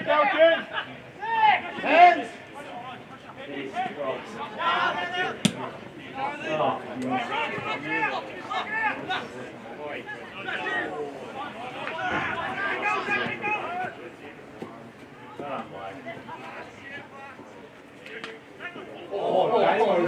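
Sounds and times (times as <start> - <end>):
spectators shouting and talking: 0.0 - 20.0.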